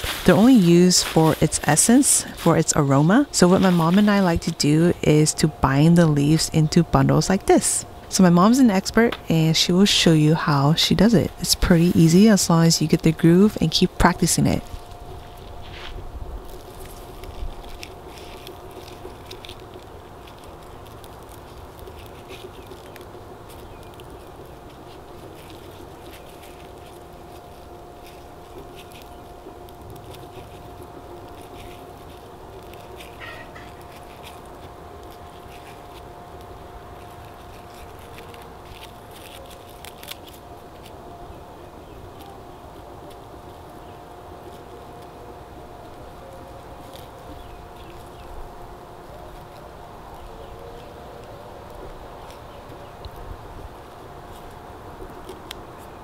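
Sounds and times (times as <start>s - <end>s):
dry leaves rustling and crackling: 0.0s - 56.0s
steady low hum: 0.0s - 56.0s.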